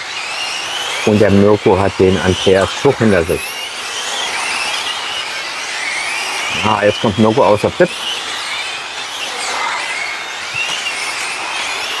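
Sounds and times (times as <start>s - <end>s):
rc car motors whining: 0.0s - 12.0s.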